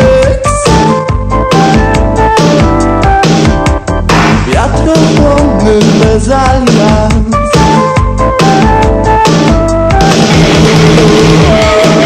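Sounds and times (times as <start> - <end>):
rock band instrumental: 0.0 - 12.0.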